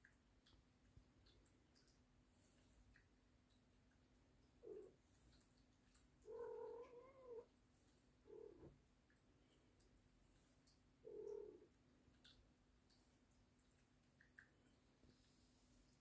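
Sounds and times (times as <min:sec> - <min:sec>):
cat meowing faintly: 0:06.2 - 0:07.5.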